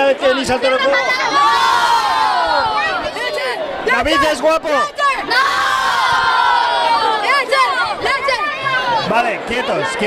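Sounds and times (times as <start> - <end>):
children shouting and cheering: 0.6 - 10.0.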